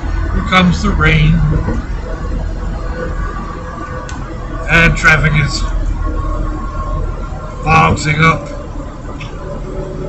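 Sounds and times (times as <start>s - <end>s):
road traffic passing: 0.0s - 10.0s.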